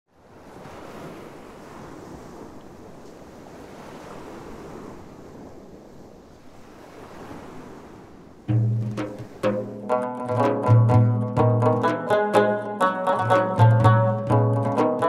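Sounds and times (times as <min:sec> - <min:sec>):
ocean waves washing in: 0:00.2 - 0:15.0.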